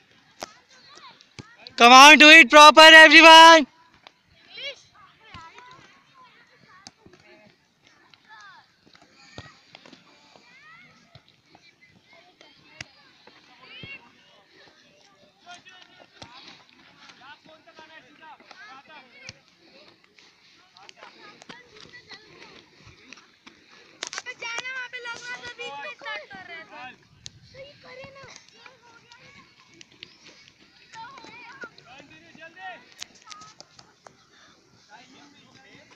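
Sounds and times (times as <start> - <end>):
children calling and shouting: 0.0 - 35.9.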